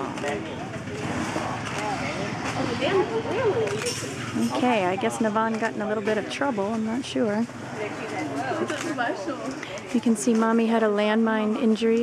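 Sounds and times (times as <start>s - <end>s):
murmur of overlapping chatter: 0.0s - 12.0s.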